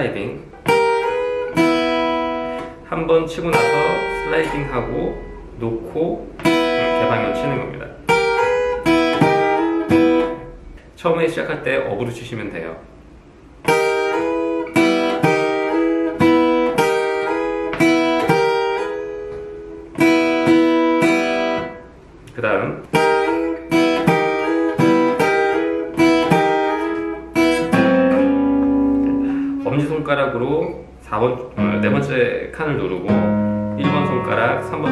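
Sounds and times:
acoustic guitar boogie riff: 0.0 - 10.7, 13.4 - 34.9.

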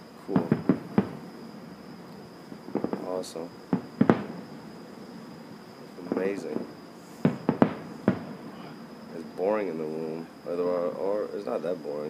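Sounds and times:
distant fireworks popping: 0.2 - 12.0.

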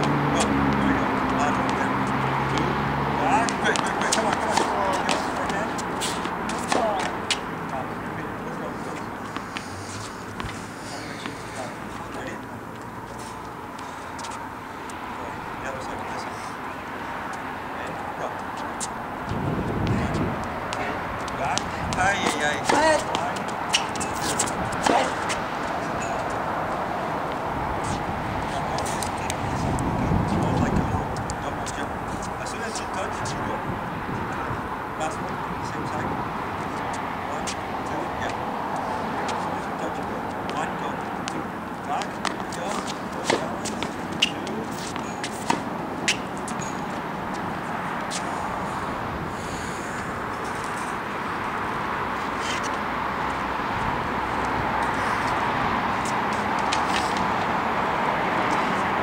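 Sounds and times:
person speaking: 0.0 - 13.4, 17.7 - 33.7, 36.8 - 48.7
footwork scuffs and ball ticks: 0.0 - 34.2, 35.1 - 48.9, 49.9 - 59.0
outdoor background noise: 0.0 - 59.0.

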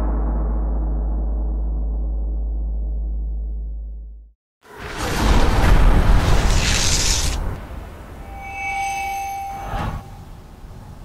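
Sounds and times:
short rush of noise: 4.7 - 7.6
synthesized ringing tone: 8.2 - 10.4.

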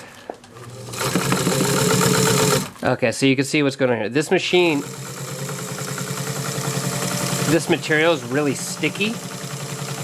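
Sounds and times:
sewing machine stitching: 0.5 - 2.8, 4.6 - 10.0.

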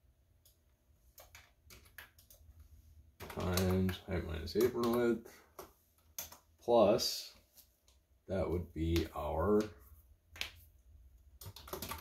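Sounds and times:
computer keyboard typing: 0.4 - 2.6, 3.2 - 6.5, 11.3 - 12.0.

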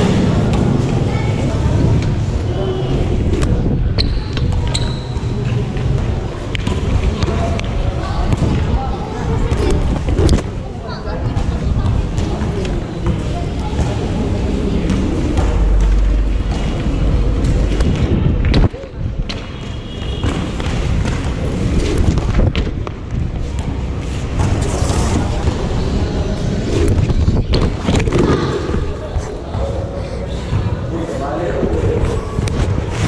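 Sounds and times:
wind rumble on microphone: 1.1 - 4.6, 14.9 - 19.4, 21.0 - 23.5, 25.1 - 29.3.

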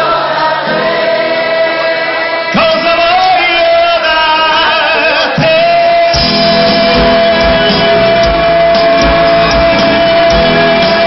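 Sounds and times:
live band with singing: 0.0 - 11.0.

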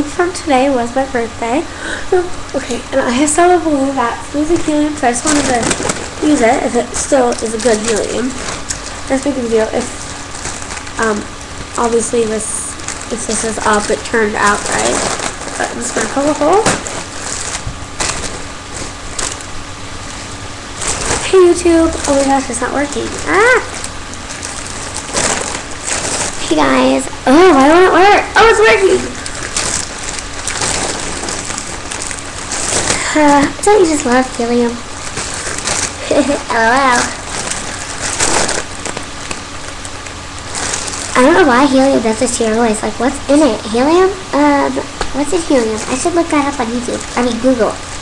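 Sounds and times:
foil balloon rustling and crackling: 0.0 - 48.0
breathy hissing air: 1.7 - 2.2.

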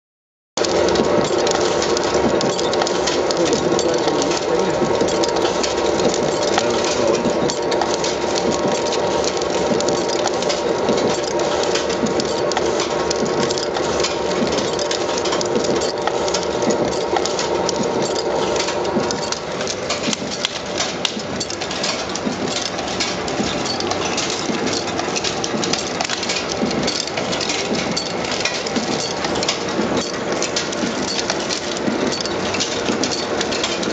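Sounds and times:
etching machine whirring and ticking: 0.6 - 33.9
steady mechanical noise: 0.6 - 33.9.

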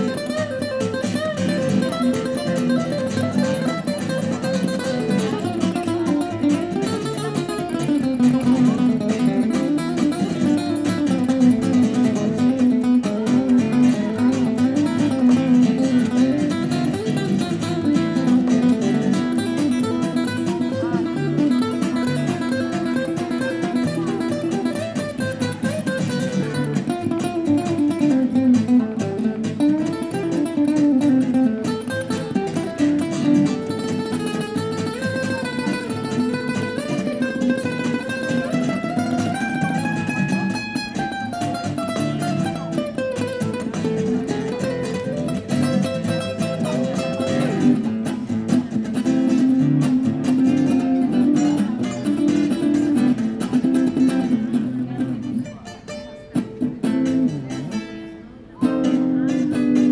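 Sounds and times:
flamenco acoustic guitars: 0.0 - 59.9.

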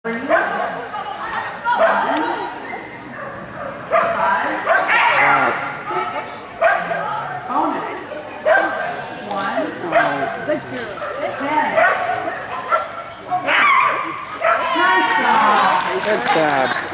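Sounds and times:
dog barking: 0.3 - 0.7, 1.8 - 2.1, 3.1 - 5.5, 6.6 - 7.0, 8.4 - 8.9, 9.8 - 10.3, 11.0 - 14.8.

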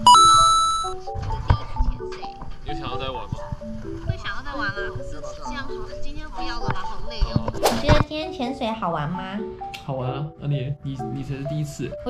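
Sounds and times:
bell-like chime: 0.0 - 1.0
light background music: 0.0 - 12.0.

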